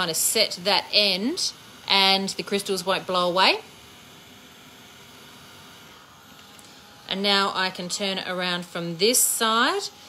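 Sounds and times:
heat gun hissing: 0.0s - 10.0s.

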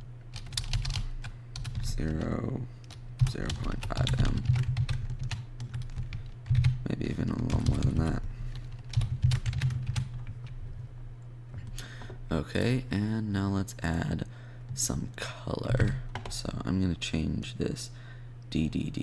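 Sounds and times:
typing on computer keyboard: 0.4s - 2.3s, 2.9s - 6.8s, 7.4s - 10.3s.

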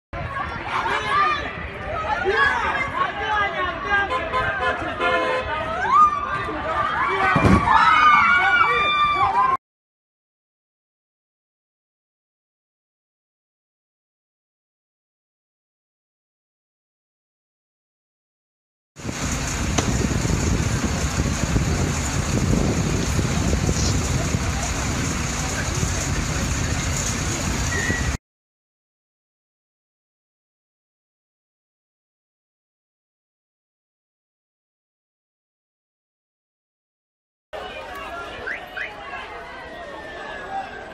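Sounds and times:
crowd shouting and talking: 0.2s - 9.6s, 19.0s - 28.2s, 37.6s - 40.9s
voices holding high cries: 0.4s - 9.6s
fire engines rumbling: 19.0s - 28.2s, 37.6s - 40.9s
wind buffeting microphone: 19.0s - 28.2s.

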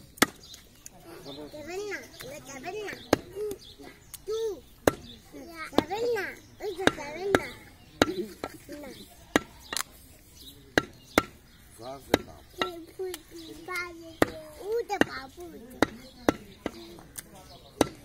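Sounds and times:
cleaver chopping meat on wood: 0.1s - 0.6s, 2.9s - 4.2s, 4.8s - 8.7s, 9.3s - 9.9s, 10.7s - 13.2s, 14.2s - 18.0s.

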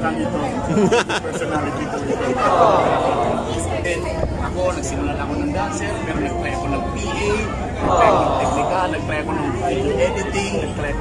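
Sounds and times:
conversational speech: 0.0s - 11.0s.

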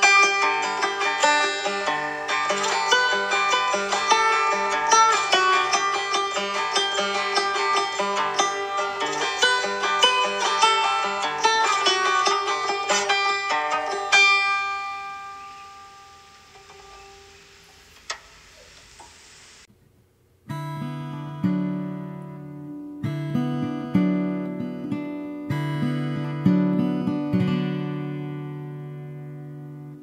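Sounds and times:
fingerpicked acoustic guitar: 0.0s - 17.9s, 20.4s - 30.0s
strummed acoustic guitar chords: 0.0s - 17.9s, 20.5s - 30.0s.

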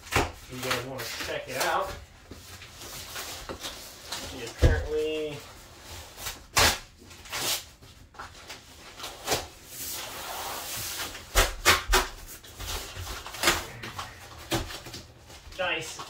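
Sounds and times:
cardboard and tape ripping: 6.0s - 7.8s, 8.4s - 15.8s.

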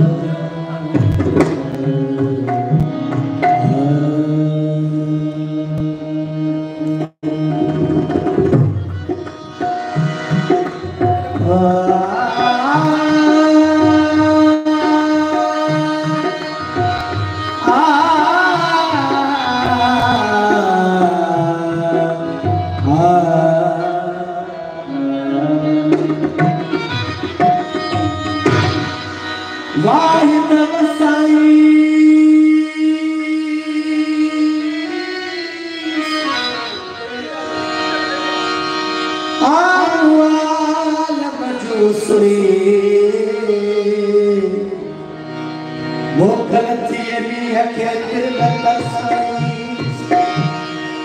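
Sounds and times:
man singing: 0.0s - 8.1s, 10.0s - 29.0s, 29.6s - 38.3s, 39.2s - 45.1s, 46.0s - 51.0s
harmonium: 0.0s - 51.0s.

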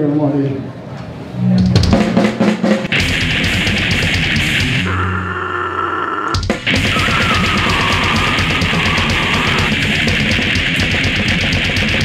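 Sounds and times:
low distorted guitar note: 2.9s - 5.6s
death metal band playing live: 2.9s - 12.0s.

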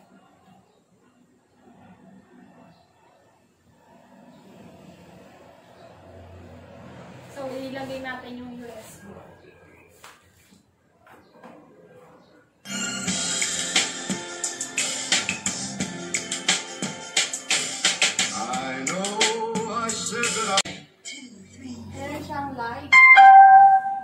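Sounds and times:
song with singing and percussion: 15.3s - 20.8s.

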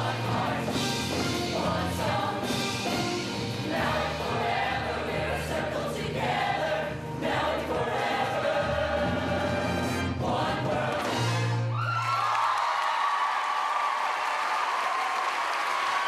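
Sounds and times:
live band accompaniment: 0.0s - 4.6s
choir singing: 0.0s - 11.6s.

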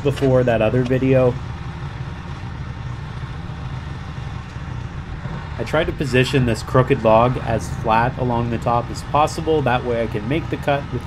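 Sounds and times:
gasoline engine running: 0.0s - 11.0s.

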